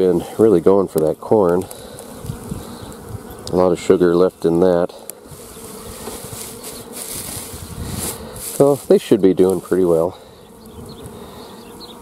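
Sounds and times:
bees buzzing: 0.0 - 12.0.

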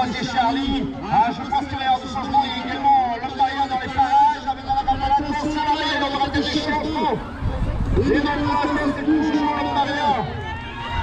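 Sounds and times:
man announcing over loudspeaker: 0.0 - 10.7.

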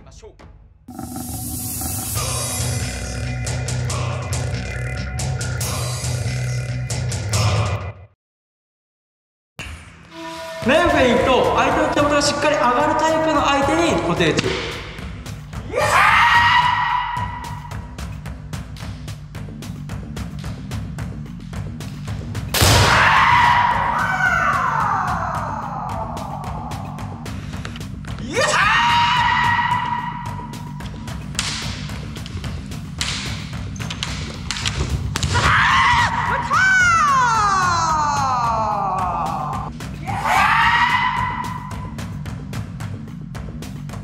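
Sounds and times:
background music with steady beat: 0.0 - 7.8, 9.9 - 44.0
person shouting: 15.6 - 17.5, 22.9 - 27.0, 28.2 - 30.2, 35.4 - 41.7
bamboo swords knocking: 31.2 - 35.5
person shouting long cry: 35.7 - 41.4.

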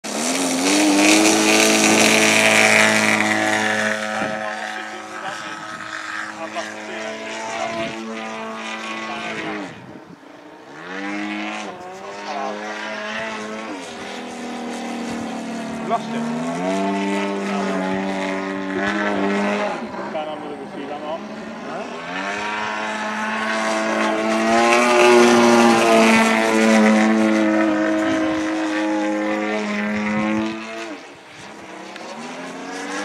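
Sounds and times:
model plane engine and propeller: 0.0 - 33.0.

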